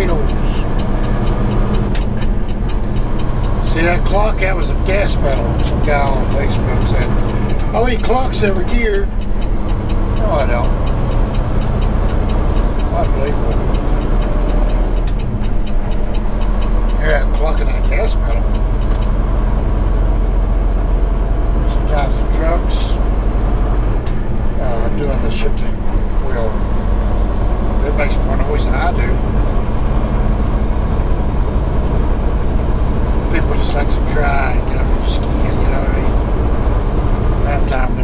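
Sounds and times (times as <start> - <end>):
light rapid ticking: 0.0 - 38.0
road noise: 0.0 - 38.0
truck diesel engine running: 0.0 - 38.0.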